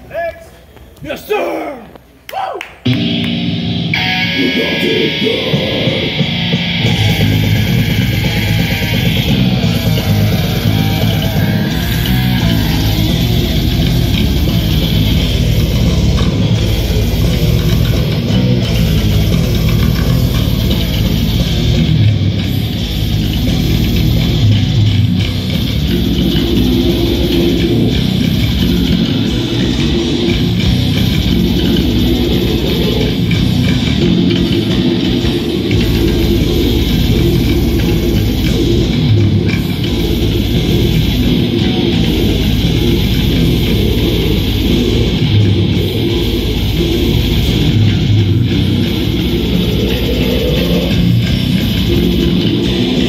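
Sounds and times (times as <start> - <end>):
bass guitar: 2.8 - 53.0
distorted electric guitar: 2.8 - 53.0
heavy metal band playing live: 2.8 - 53.0
fast drum strokes: 4.5 - 53.0.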